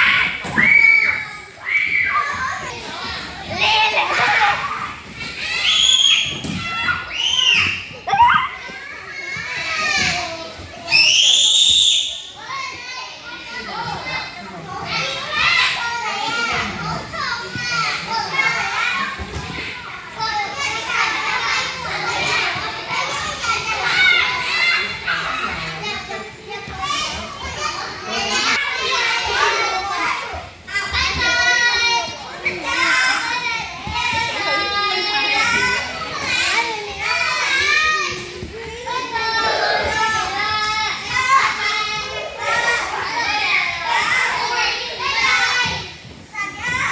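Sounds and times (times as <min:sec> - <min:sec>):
children shouting and chattering: 0:00.0 - 0:46.9.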